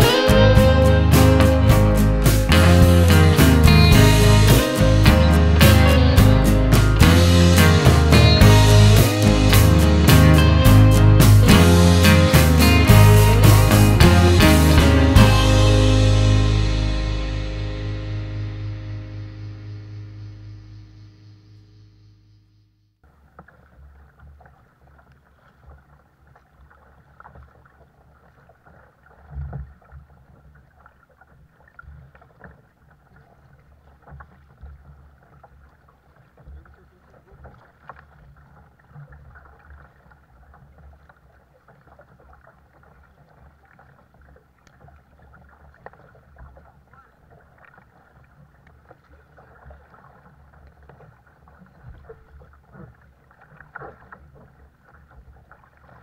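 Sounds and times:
paddle splashing in water: 0.0s - 19.5s, 23.0s - 56.0s.

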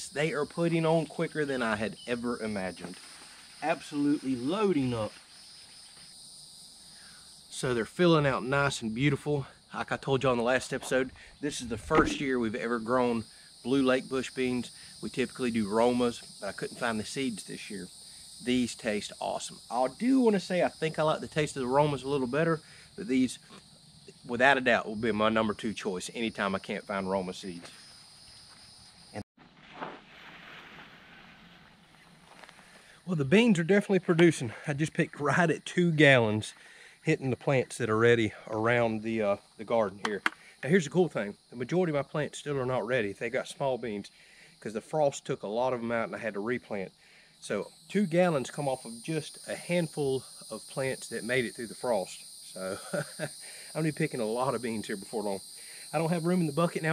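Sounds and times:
insects chirring: 0.0s - 29.2s, 29.8s - 56.9s
faint outdoor rustling: 0.0s - 41.9s
soft scuff: 29.4s - 32.7s.

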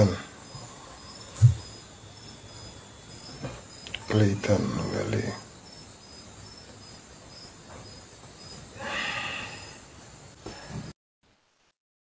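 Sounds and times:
cricket chirping: 0.0s - 10.9s.

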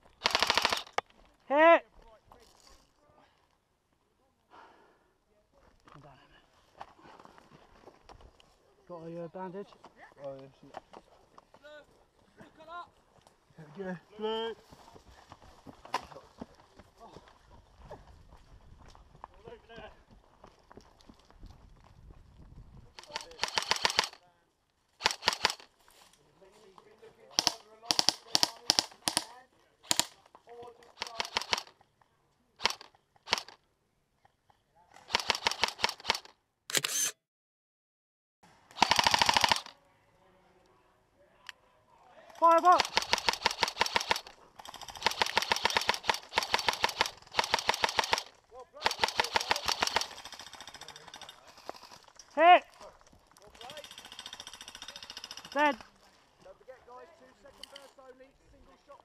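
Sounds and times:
airsoft guns firing: 0.2s - 1.0s, 23.0s - 24.2s, 25.0s - 25.7s, 27.3s - 30.2s, 31.0s - 31.7s, 32.6s - 33.6s, 35.1s - 36.3s, 38.8s - 39.7s, 42.4s - 50.8s.

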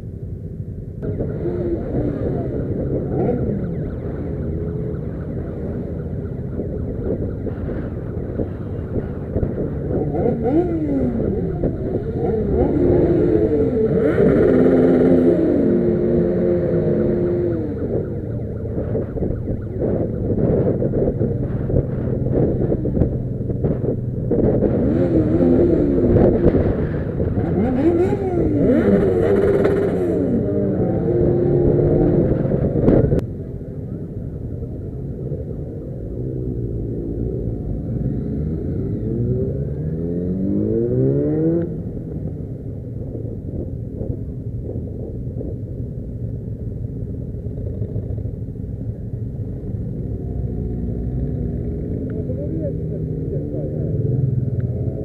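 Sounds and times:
motorcycle engines revving: 1.0s - 55.0s.

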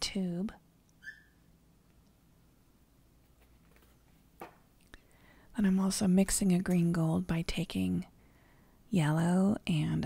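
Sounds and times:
faint low hum: 0.0s - 10.0s
faint high squeak: 1.0s - 1.5s.

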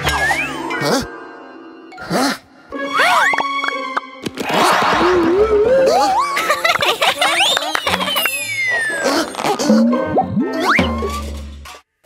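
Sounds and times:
whistle-like pitch slides: 7.3s - 9.2s
springy cartoon boings: 7.5s - 11.4s.

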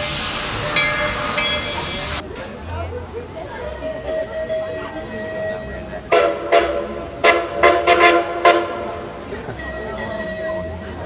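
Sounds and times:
steam locomotive whistle blasts: 4.0s - 9.1s.

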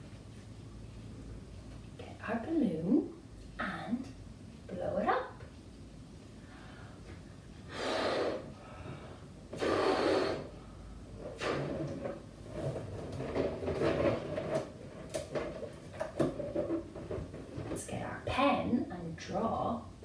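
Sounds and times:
breaths blowing up balloon: 7.6s - 12.0s
rubbery balloon squeaks: 11.3s - 12.1s.

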